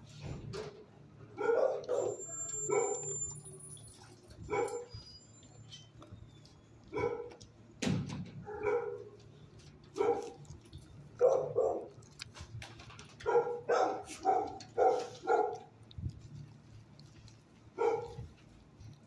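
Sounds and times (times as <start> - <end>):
dog barking: 1.4 - 3.2, 4.5 - 4.9, 6.9 - 7.4, 8.4 - 9.2, 10.0 - 10.4, 11.2 - 12.0, 13.2 - 15.7, 17.7 - 18.3.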